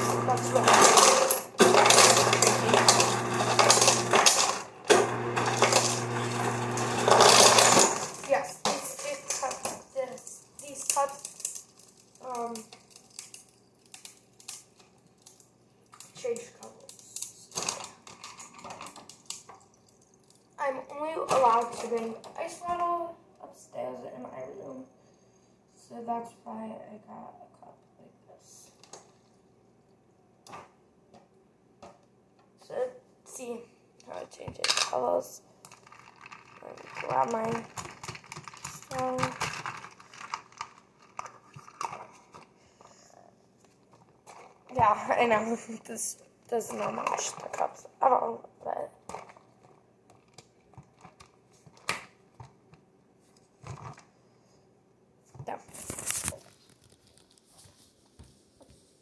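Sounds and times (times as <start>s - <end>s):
plastic cups clicking: 0.2s - 9.8s, 35.6s - 42.5s, 49.0s - 52.6s.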